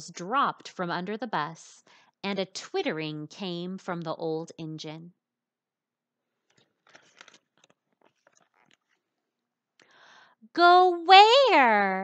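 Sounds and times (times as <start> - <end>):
paper page turning: 6.4 - 9.1.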